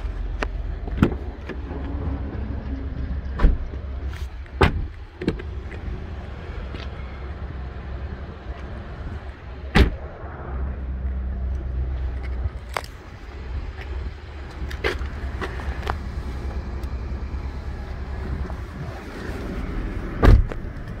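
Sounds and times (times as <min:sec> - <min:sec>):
steady low rumble: 0:00.0 - 0:21.0
car doors thudding shut: 0:03.4 - 0:03.7, 0:04.6 - 0:05.5, 0:09.7 - 0:10.0, 0:20.2 - 0:20.6.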